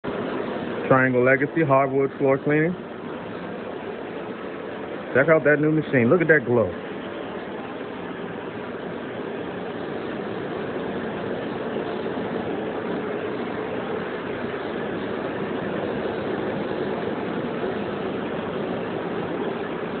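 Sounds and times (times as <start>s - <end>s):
faint steady whine: 0.0s - 20.0s.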